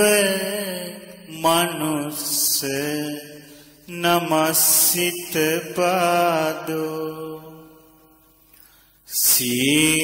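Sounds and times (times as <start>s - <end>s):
person chanting verse: 0.0s - 8.2s, 9.1s - 10.0s.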